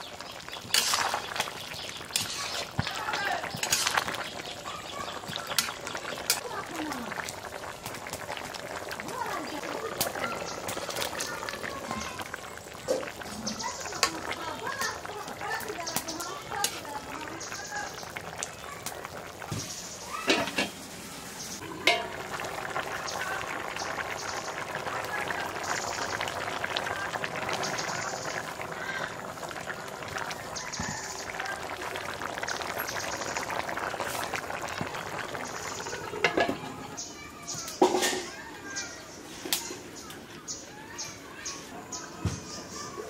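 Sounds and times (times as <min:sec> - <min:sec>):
curry bubbling in a pan: 0:00.0 - 0:41.3
metal spatula scraping a pan: 0:00.7 - 0:01.3, 0:02.1 - 0:02.8, 0:03.6 - 0:04.1.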